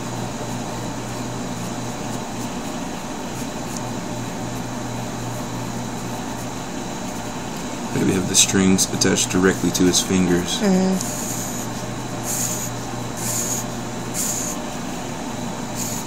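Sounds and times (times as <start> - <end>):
low mechanical hum: 0.0 - 16.0
constant hiss: 4.5 - 14.8.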